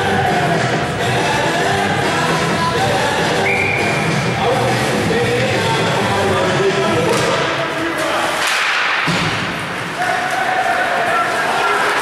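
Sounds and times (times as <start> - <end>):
arena music: 0.0 - 8.0
hockey sticks clacking: 7.0 - 12.0
skates scraping ice: 7.4 - 12.0.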